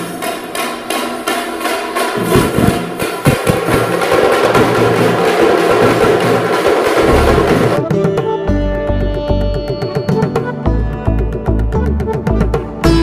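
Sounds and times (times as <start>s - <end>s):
frame drums beaten with sticks: 0.0s - 8.4s.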